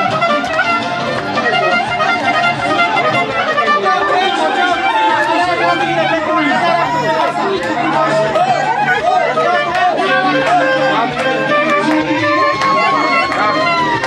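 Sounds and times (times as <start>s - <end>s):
band music with wavering melody: 0.0s - 14.0s
crowd chattering: 0.0s - 14.0s.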